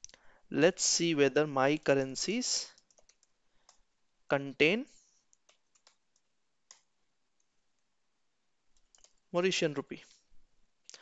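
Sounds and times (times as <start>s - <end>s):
faint keyboard keystrokes: 2.7s - 3.8s, 5.3s - 7.5s, 8.7s - 9.2s.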